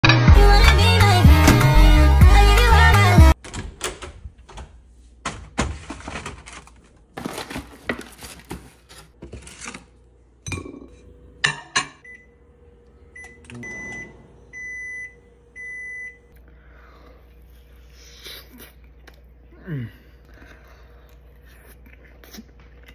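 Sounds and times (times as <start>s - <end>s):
music: 0.0s - 3.4s
microwave oven beeps: 12.0s - 12.5s, 13.1s - 16.4s.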